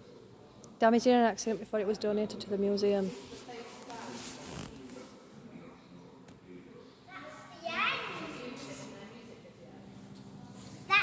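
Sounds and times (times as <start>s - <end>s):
murmur of people talking: 0.0s - 11.0s.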